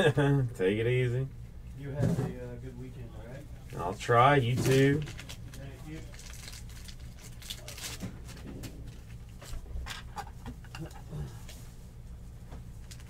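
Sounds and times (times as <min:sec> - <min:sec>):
low steady hum: 0:00.0 - 0:13.0
cards and plastic wrappers rustling: 0:04.3 - 0:10.1, 0:12.7 - 0:13.0.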